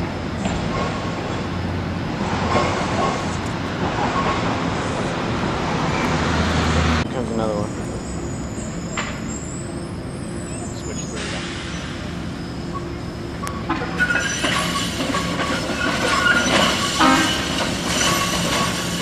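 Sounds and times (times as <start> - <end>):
city traffic noise: 0.0 - 19.0.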